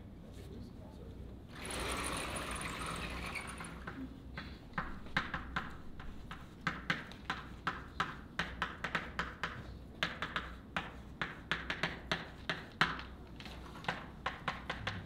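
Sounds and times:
chalk writing on a blackboard: 3.8 - 15.0.

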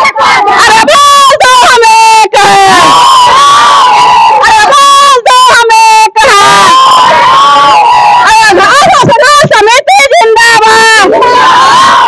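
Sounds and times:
women shouting in unison: 0.0 - 12.0.

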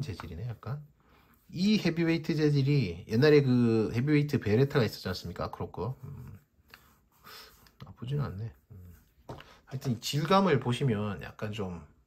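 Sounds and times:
short breath: 6.6 - 7.7.

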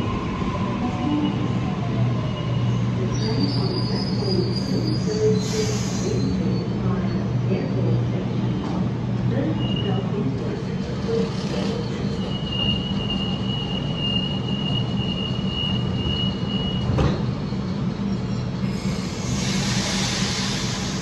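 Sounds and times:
electric train rumble and hum: 0.0 - 21.0
high squeal: 11.8 - 17.7.

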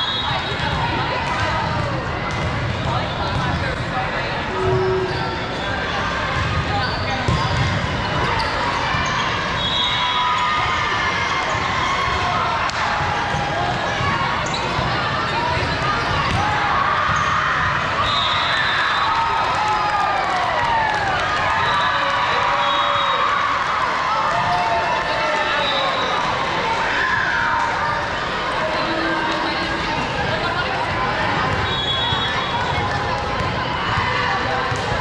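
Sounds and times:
babble of many voices: 0.0 - 35.0
volleyballs hit and bouncing: 0.5 - 4.4, 11.4 - 18.0, 28.9 - 35.0.

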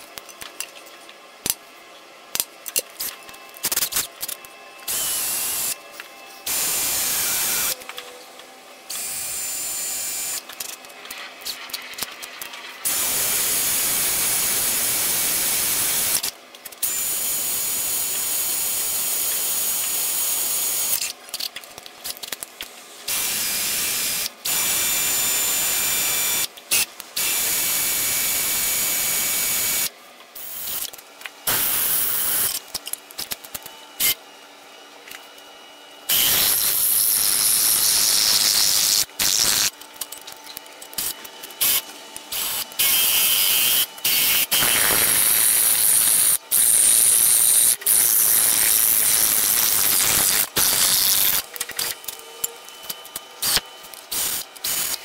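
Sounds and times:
cordless drill boring into metal: 4.9 - 5.8, 6.5 - 7.8, 8.9 - 10.5, 36.1 - 39.7, 41.0 - 51.9.

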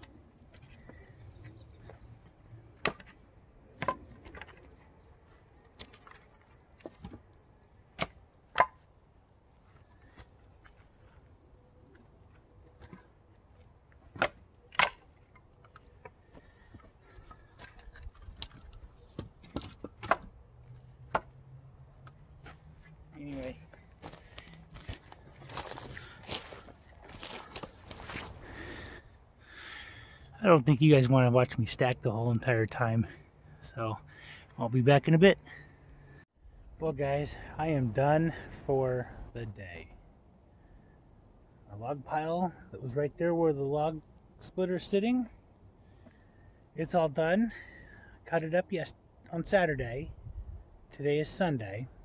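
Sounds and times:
firewood pieces clacking together: 14.0 - 20.4
rustling and scuffing: 22.4 - 28.6.

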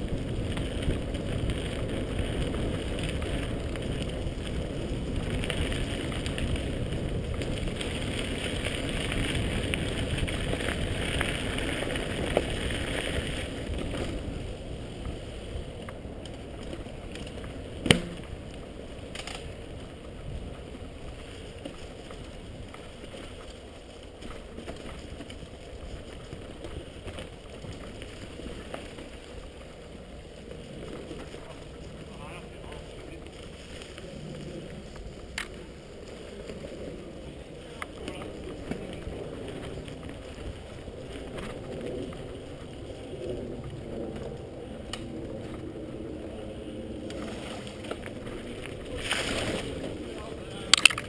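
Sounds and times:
mountain bike rattling on stony trail: 0.0 - 51.0.

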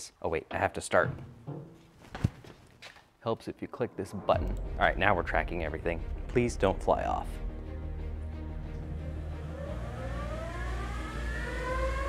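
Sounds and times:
electric motors whining: 8.8 - 12.0.

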